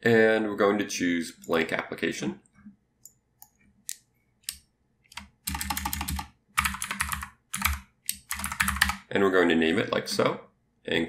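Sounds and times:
typing on computer keyboard: 0:04.5 - 0:09.0.

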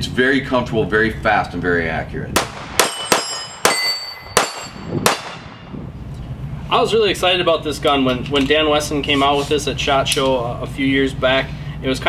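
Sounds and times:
pistol shots: 0:02.4 - 0:05.6
steel plate target clanging: 0:02.8 - 0:05.3.

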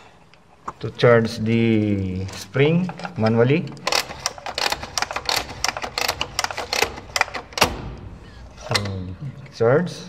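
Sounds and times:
rapid mechanical clicks: 0:03.8 - 0:08.0
loud mechanical clack: 0:03.9 - 0:08.0.

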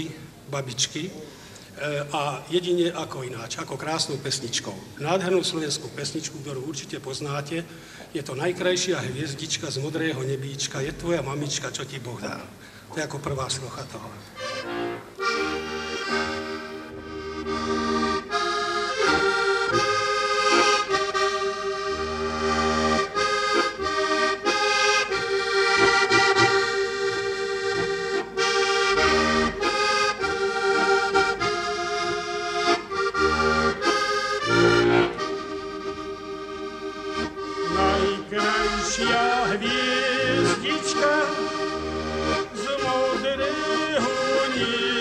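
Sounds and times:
button accordion playing: 0:14.4 - 0:45.0.

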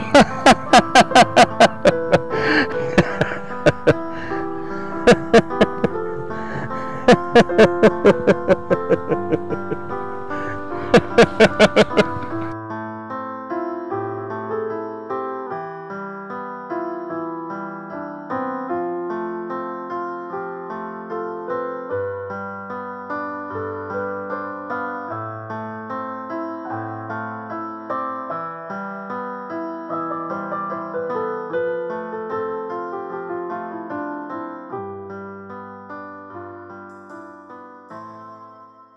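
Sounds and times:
background piano music: 0:00.0 - 0:38.9.

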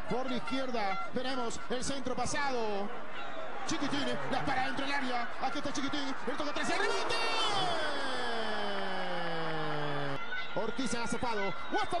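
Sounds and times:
stadium crowd noise: 0:00.0 - 0:12.0
commentator exclaiming: 0:06.4 - 0:10.2.

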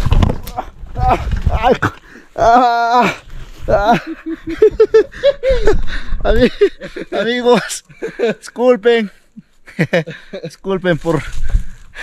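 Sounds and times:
man laughing hard: 0:01.0 - 0:08.5, 0:09.7 - 0:10.5
man speaking: 0:06.2 - 0:09.2, 0:10.4 - 0:11.3.

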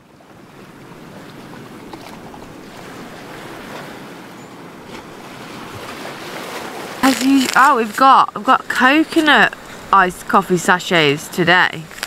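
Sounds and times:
small waves breaking on beach: 0:00.0 - 0:12.0
wind: 0:00.0 - 0:12.0.

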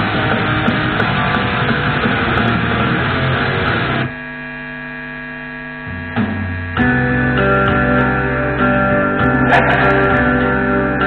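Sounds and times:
strummed guitar: 0:00.0 - 0:04.1, 0:05.9 - 0:11.0
amplifier mains hum: 0:00.0 - 0:11.0
distorted electric guitar: 0:00.0 - 0:11.0.

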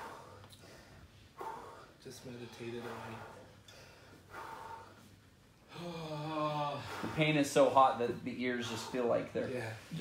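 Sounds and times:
man speaking: 0:02.0 - 0:03.4, 0:06.0 - 0:10.0
man gasping: 0:05.7 - 0:07.2.

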